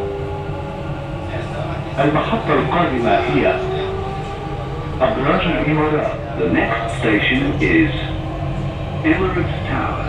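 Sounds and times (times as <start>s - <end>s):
train rumbling: 0.0s - 10.0s
recorded announcement voice: 1.3s - 4.0s, 4.9s - 8.2s, 9.0s - 10.0s.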